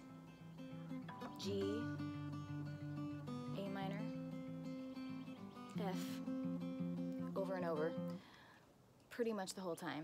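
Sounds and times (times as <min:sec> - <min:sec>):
fingerpicked acoustic guitar: 0:00.0 - 0:08.3.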